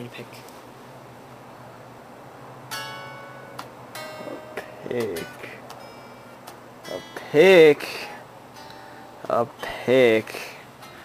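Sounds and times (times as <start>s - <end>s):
electric guitar chords strummed: 2.7s - 11.0s.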